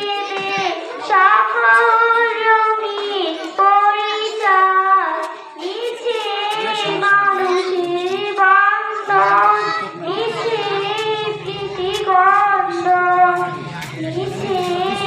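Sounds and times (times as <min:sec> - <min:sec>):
girl singing into a microphone: 0:00.0 - 0:15.0.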